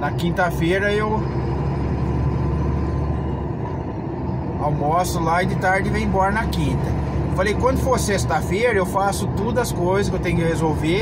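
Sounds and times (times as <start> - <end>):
truck engine drone: 0.0 - 11.0
tyres on road: 0.0 - 11.0.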